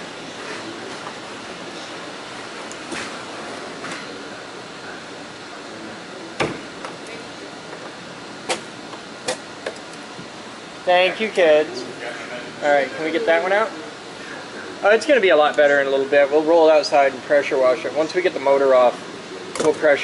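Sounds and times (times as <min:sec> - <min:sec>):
steady background hiss: 0:00.0 - 0:20.0.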